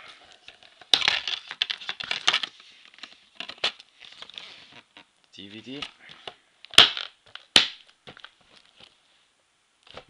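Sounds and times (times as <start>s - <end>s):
plastic wrap crinkling: 0.3s - 5.1s, 6.7s - 9.0s.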